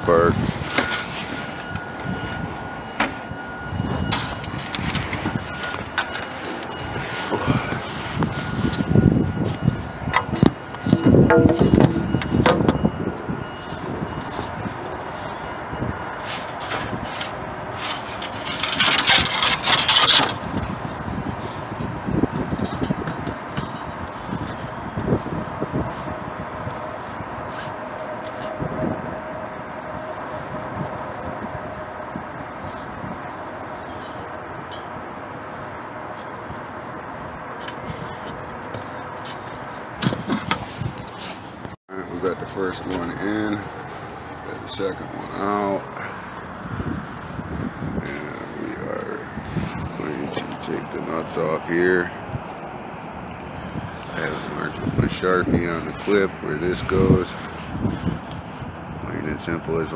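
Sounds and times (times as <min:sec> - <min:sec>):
outdoor background noise: 0:00.0 - 0:59.9
metal scraping and clinking: 0:16.2 - 0:25.2, 0:33.7 - 0:35.0.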